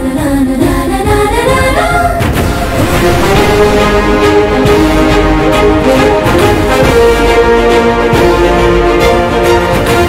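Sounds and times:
music with singing voices: 0:00.0 - 0:10.0.

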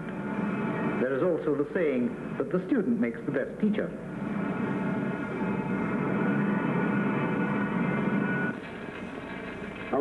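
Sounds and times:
machinery drone: 0:04.0 - 0:08.6.

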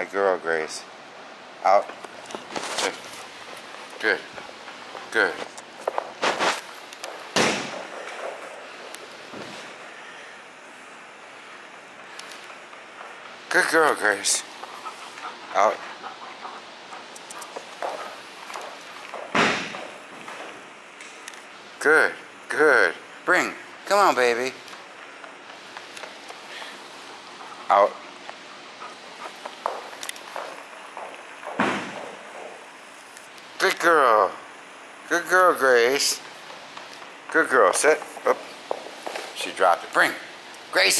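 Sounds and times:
dog paws on rubber mat: 0:01.8 - 0:09.8, 0:11.7 - 0:21.4, 0:23.8 - 0:33.9, 0:35.5 - 0:40.9
ball bouncing on rubber floor: 0:17.6 - 0:20.6, 0:29.5 - 0:32.6.

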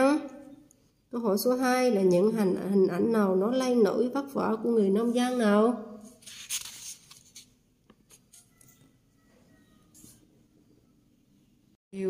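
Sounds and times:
paper pages rustling: 0:06.0 - 0:08.8.

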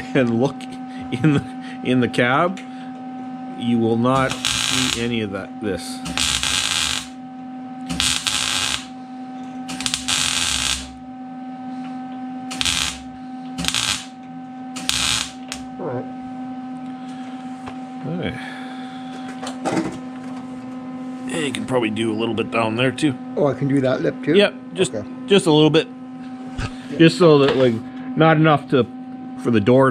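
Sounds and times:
steady electrical hum: 0:00.0 - 0:29.9
welding bursts: 0:04.2 - 0:05.2, 0:06.0 - 0:07.2, 0:07.9 - 0:08.9, 0:09.7 - 0:11.0, 0:12.5 - 0:14.2, 0:14.8 - 0:15.6.

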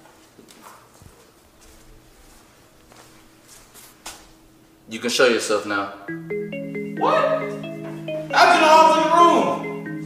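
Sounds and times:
footsteps on hard floor: 0:00.0 - 0:04.4, 0:07.5 - 0:08.1.

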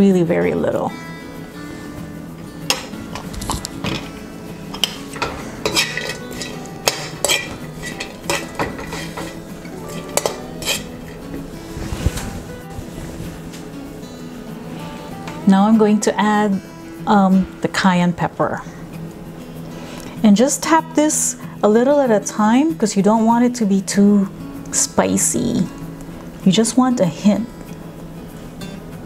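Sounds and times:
soft background music: 0:00.0 - 0:29.0
metal spoon scraping a wok: 0:04.8 - 0:11.7.

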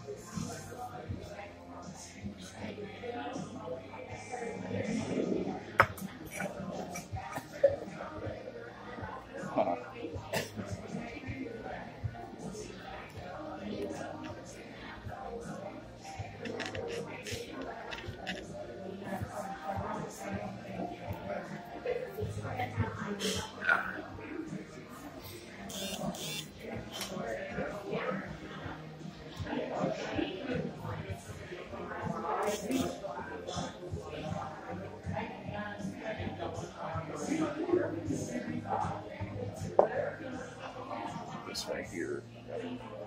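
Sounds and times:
murmur of voices: 0:00.0 - 0:43.0
music: 0:00.0 - 0:43.0.

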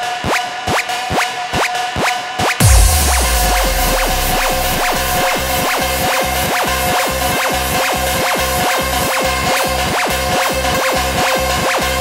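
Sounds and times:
trance music with deep bass: 0:02.6 - 0:06.1.

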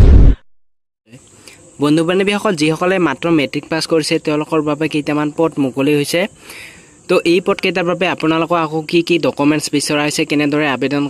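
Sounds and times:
bass-heavy transition effect: 0:00.0 - 0:00.4.

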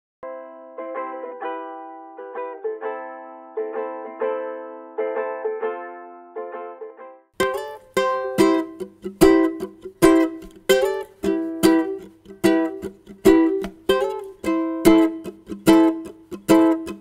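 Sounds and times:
bright ukulele playing: 0:07.4 - 0:17.0
dull ukulele chords ringing: 0:07.4 - 0:17.0.

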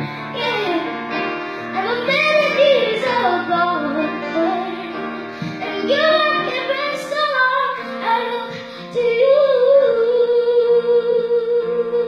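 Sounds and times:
boy singing a slow ballad: 0:00.0 - 0:12.0
piano accompaniment: 0:00.0 - 0:12.0.

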